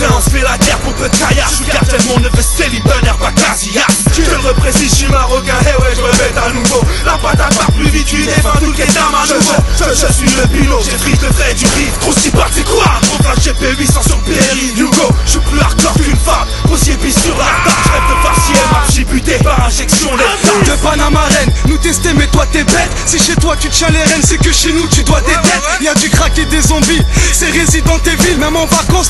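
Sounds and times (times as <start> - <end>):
rapping over a beat: 0.0 - 29.0.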